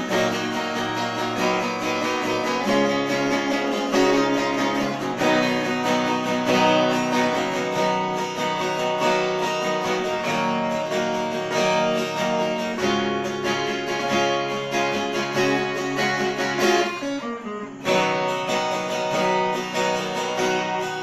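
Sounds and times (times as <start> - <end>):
acoustic guitar picking melody: 0.0 - 21.0
acoustic guitar strumming chords: 0.0 - 21.0.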